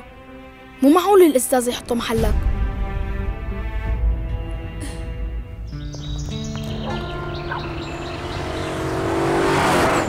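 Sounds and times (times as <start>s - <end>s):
background music: 0.0s - 10.0s
motorcycle passing by: 6.7s - 10.0s.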